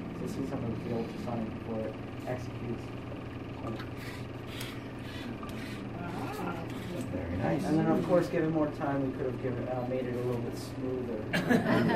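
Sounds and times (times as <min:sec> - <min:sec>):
low room hum: 0:00.0 - 0:11.9
faint murmured voices: 0:05.0 - 0:08.3.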